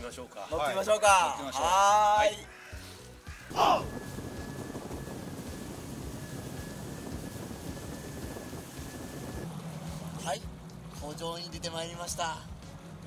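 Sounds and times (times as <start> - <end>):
wind buffeting microphone: 3.5 - 9.5
outboard engine running: 3.8 - 13.0.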